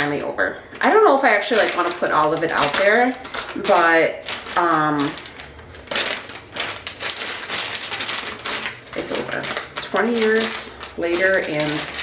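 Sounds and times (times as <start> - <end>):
plastic packaging crinkling: 0.8 - 12.0.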